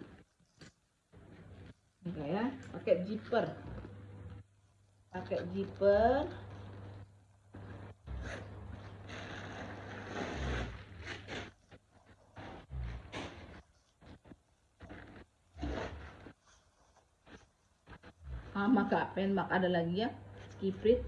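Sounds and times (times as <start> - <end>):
short scrapes: 7.6 - 17.5
handbag rubbing and rustling: 7.6 - 18.9.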